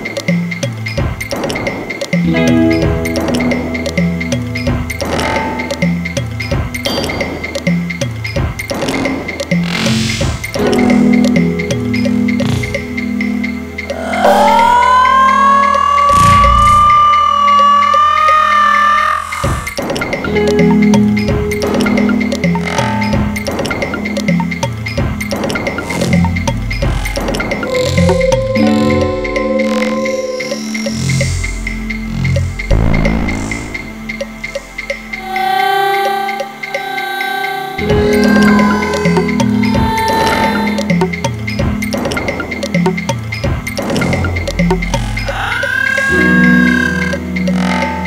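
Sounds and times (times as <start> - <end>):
bass: 2.3 - 18.5, 19.4 - 35.2
low drone: 9.5 - 23.3, 25.8 - 41.5
light ticking: 10.4 - 14.8, 19.4 - 48.0
wavering electronic tone: 10.8 - 21.2, 25.9 - 41.2
sustained synthesizer chord: 25.8 - 40.0.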